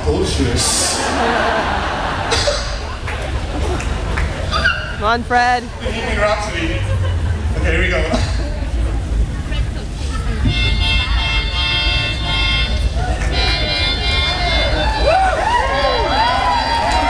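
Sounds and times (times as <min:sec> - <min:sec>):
small wind instrument playing: 0:10.5 - 0:15.1.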